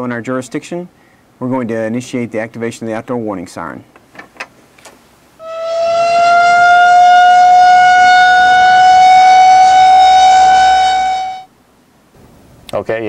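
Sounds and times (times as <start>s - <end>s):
warning siren steady tone: 5.4s - 11.5s.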